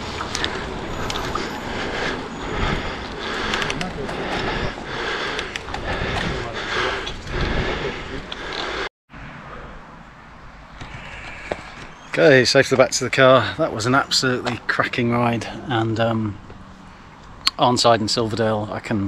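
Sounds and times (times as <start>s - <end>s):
bike tyres rolling on tarmac: 0.0s - 8.9s
wind rushing over microphone: 0.0s - 8.9s
quiet outdoor background: 0.0s - 19.0s.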